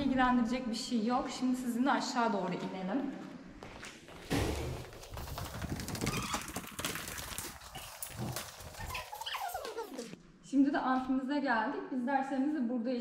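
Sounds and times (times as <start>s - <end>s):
footsteps down hard stairs: 3.2s - 10.2s.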